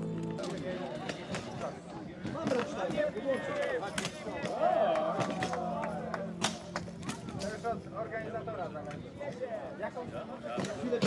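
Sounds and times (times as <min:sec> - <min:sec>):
spectators chatting: 0:00.0 - 0:11.0.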